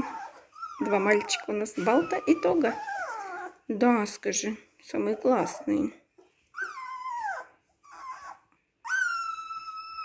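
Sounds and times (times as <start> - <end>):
puppy howling high-pitched: 0.0 - 3.6, 6.6 - 10.0
puppy whimpering: 0.0 - 3.7, 5.0 - 10.0.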